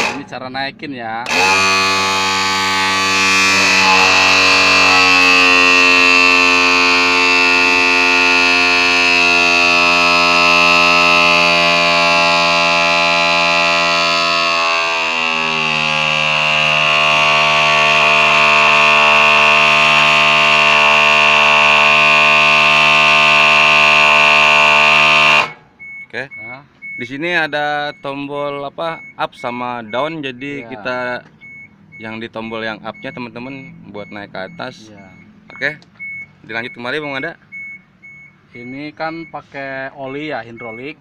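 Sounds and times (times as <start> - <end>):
hydraulic pump whine: 0.0 - 0.4, 1.2 - 25.9.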